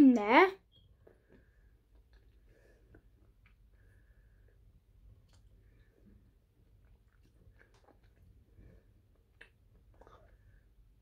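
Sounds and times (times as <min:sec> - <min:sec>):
chewing and mouth clicks: 0:01.0 - 0:03.7, 0:05.0 - 0:10.6.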